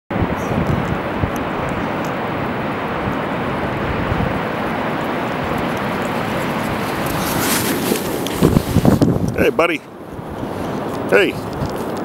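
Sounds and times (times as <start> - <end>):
ocean surf rushing: 0.1 - 12.0
wind buffeting microphone: 0.1 - 12.0.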